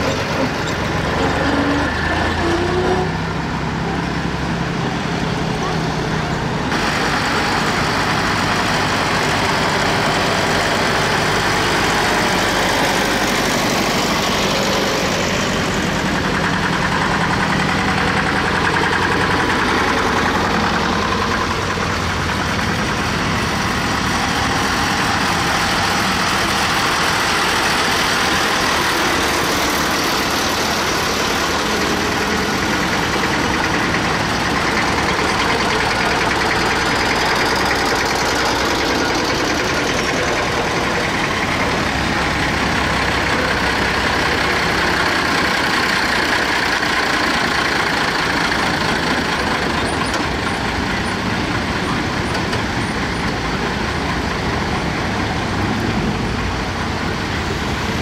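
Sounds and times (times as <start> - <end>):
tractor and truck engines passing: 0.0 - 58.0.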